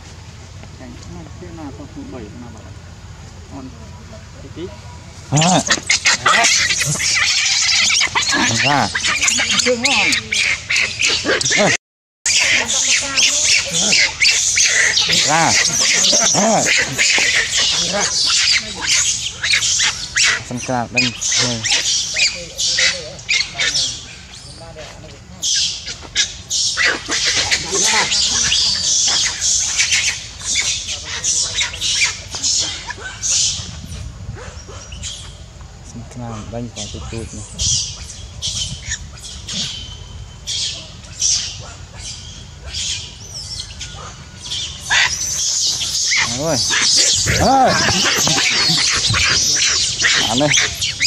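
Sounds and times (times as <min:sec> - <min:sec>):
baby monkey shrieking: 0:05.3 - 0:24.1, 0:25.4 - 0:33.7, 0:40.5 - 0:51.0
high animal chirps: 0:05.3 - 0:24.5, 0:37.2 - 0:51.0.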